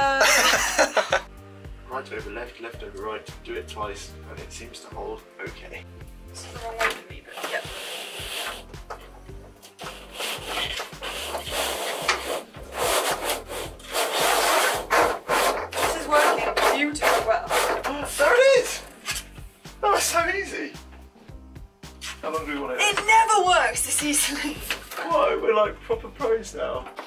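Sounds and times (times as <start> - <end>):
cable rasping through plastic conduit: 6.8 - 18.3.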